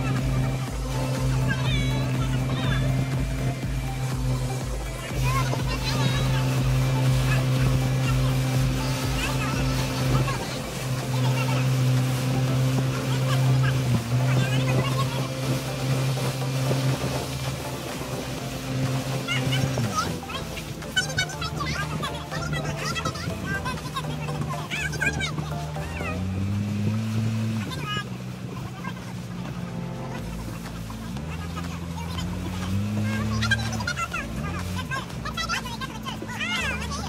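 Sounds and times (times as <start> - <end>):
motorboat engine running: 0.0 - 37.0
water and wind hiss: 0.0 - 37.0.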